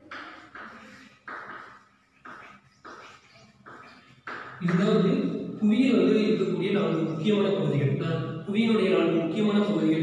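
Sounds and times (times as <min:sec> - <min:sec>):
chalk scratching on chalkboard: 0:00.0 - 0:05.4.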